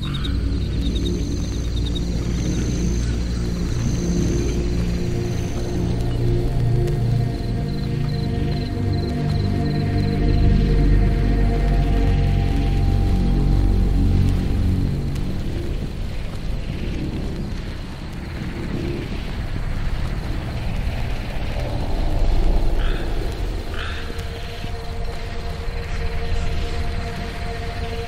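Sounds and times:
dark ambient music: 0.0 - 28.0
swamp nature sounds: 0.0 - 28.0.

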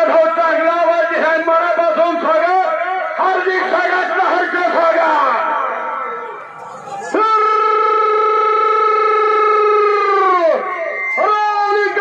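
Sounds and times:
man calling over loudspeaker: 0.0 - 12.0.

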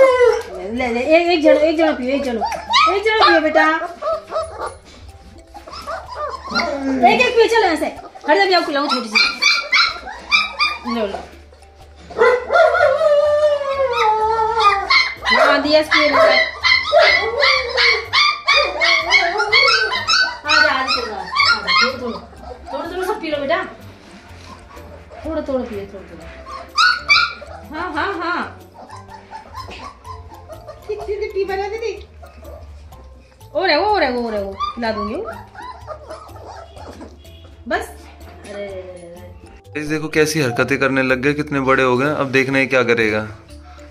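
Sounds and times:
puppies crying and whining: 0.0 - 43.9.

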